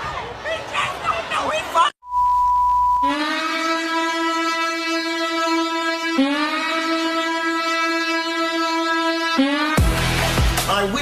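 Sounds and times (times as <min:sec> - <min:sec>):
steady horn-like tone: 0:02.1 - 0:10.3.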